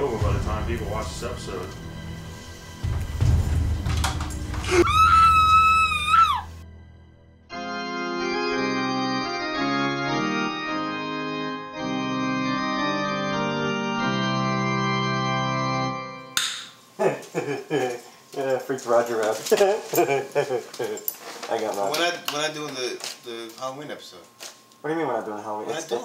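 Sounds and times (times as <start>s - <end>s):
droning horror music: 0.0s - 10.4s
high-pitched scream: 4.6s - 6.6s
man laughing: 17.0s - 18.1s, 19.4s - 21.1s.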